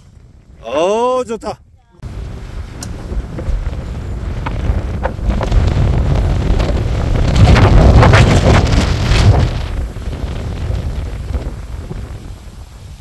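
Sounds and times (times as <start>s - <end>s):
gusty wind buffeting microphone: 0.0s - 13.0s.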